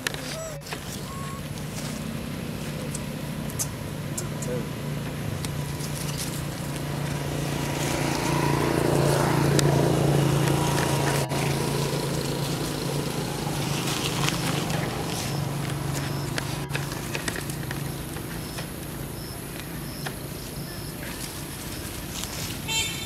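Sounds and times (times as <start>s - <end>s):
motor engine humming: 0.0s - 23.0s.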